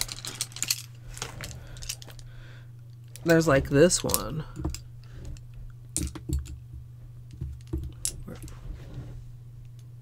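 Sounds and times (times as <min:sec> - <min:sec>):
steady low hum: 0:00.0 - 0:10.0
small brushes clicking and tapping: 0:03.0 - 0:08.6.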